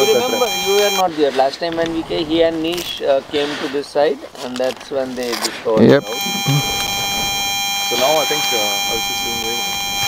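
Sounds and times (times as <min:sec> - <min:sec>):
electronic buzzing whine: 0:00.0 - 0:01.0, 0:05.8 - 0:10.0.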